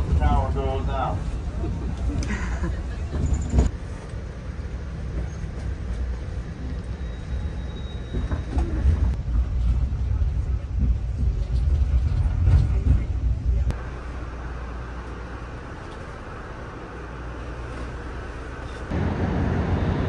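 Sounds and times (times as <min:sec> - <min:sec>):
faint passengers' voices: 0:00.0 - 0:03.7, 0:08.1 - 0:14.2.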